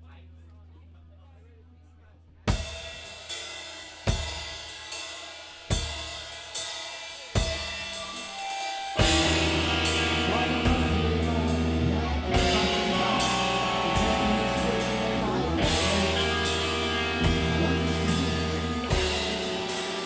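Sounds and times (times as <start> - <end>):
low amplifier hum: 0.0 - 2.5, 9.0 - 20.0
heavy metal band playing: 7.3 - 20.0.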